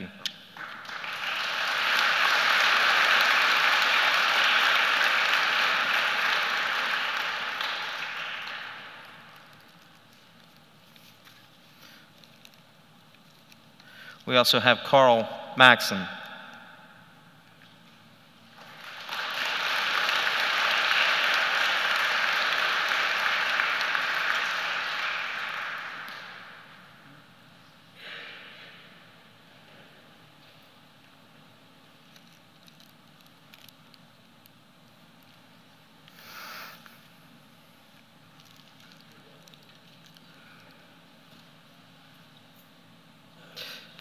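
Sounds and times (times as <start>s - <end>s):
audience applauding: 0.6s - 9.6s, 18.5s - 26.8s.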